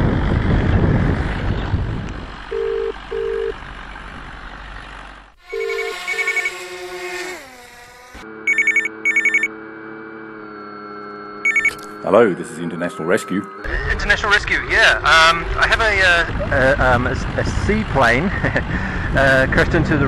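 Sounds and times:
wind noise on microphone: 0.0s - 2.5s, 16.2s - 20.0s
double-ring dialing tones: 2.5s - 3.5s, 5.6s - 6.6s, 8.5s - 9.5s, 11.4s - 11.8s
trilling phone ring: 2.5s - 3.5s, 5.5s - 6.6s, 8.5s - 9.6s, 11.4s - 11.9s.

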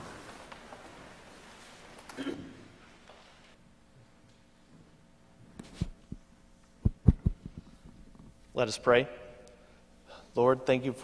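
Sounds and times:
microphone handling thumps: 5.6s - 8.4s.

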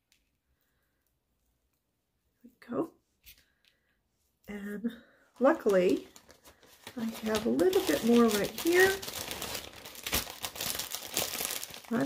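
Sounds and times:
plastic bag crinkling: 5.4s - 12.0s.

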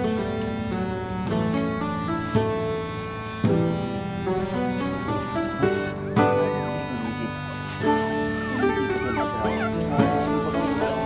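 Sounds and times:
background music with held notes: 0.0s - 11.0s
puppies whimpering: 4.9s - 11.0s.

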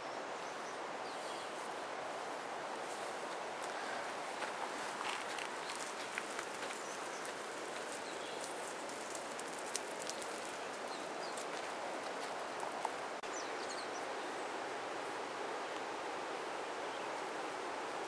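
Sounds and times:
steady outdoor hiss: 0.0s - 18.0s
dry grass and leaves rustling: 0.4s - 13.3s.

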